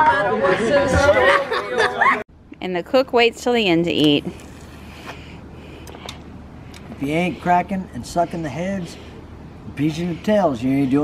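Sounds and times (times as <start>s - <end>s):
steady low hum: 2.3s - 11.0s.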